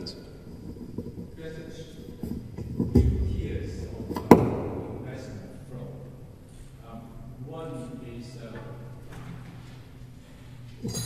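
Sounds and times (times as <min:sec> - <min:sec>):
thumps on handheld microphone: 0:02.5 - 0:04.9.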